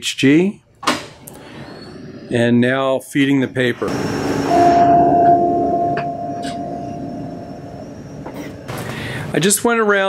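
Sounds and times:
printer feed motor whine: 3.8s - 6.3s.

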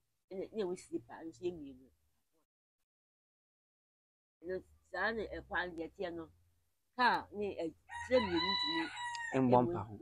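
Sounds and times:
woman talking: 0.3s - 1.9s, 4.4s - 6.3s, 7.0s - 8.9s, 9.5s - 9.9s
rooster crowing: 7.9s - 9.6s.

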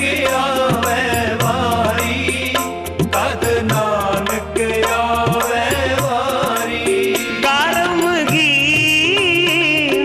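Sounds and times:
harmonium chords: 0.0s - 10.0s
men singing together: 0.0s - 10.0s.

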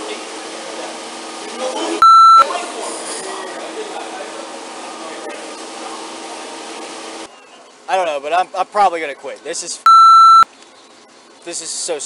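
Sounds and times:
censor bleep tone: 2.0s - 2.5s, 9.9s - 10.4s.

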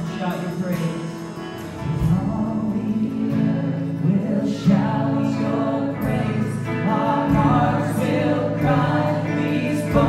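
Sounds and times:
acoustic guitar strumming: 0.0s - 10.0s
man singing: 0.0s - 10.0s
voices singing along: 2.1s - 10.0s.

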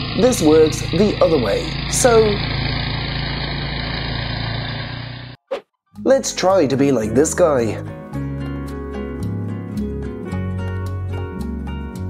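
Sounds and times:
snowblower engine running: 0.0s - 5.4s.

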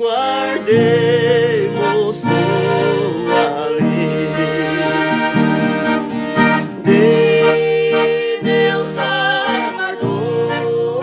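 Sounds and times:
accordion playing hymn melody: 0.0s - 11.0s
acoustic guitar strumming: 0.0s - 11.0s.

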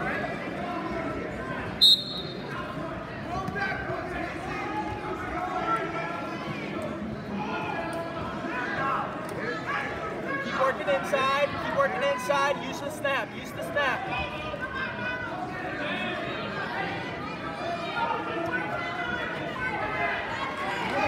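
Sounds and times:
echoing voices and chatter: 0.0s - 21.0s
referee's whistle blast: 1.8s - 2.5s.

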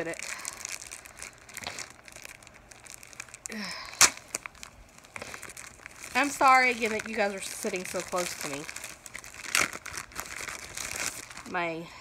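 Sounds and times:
plastic packaging crinkling and tearing: 0.0s - 11.8s.

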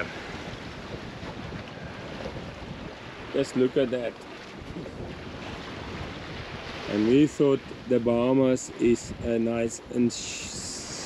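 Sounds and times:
sea water washing along hull: 0.0s - 11.0s
wind on microphone: 0.0s - 11.0s.

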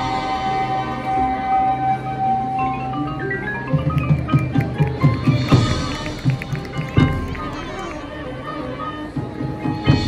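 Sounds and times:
marching band playing: 0.0s - 10.0s.

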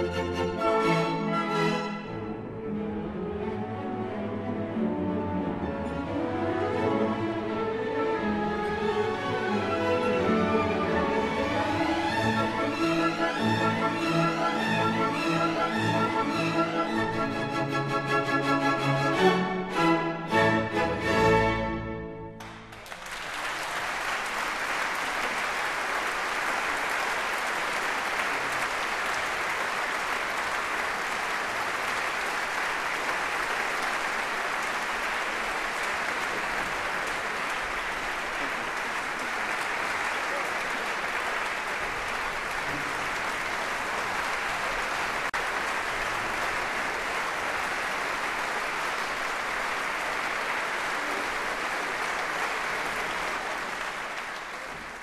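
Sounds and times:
audience applause: 8.6s - 21.0s, 22.4s - 55.0s.

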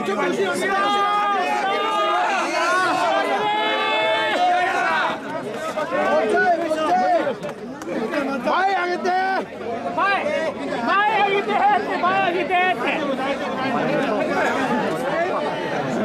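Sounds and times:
crowd chanting: 0.0s - 7.4s
overlapping crowd voices: 0.0s - 16.0s.

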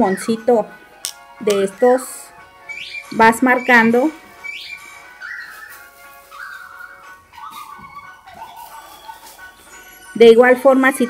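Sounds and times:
slow background music: 0.0s - 11.0s.

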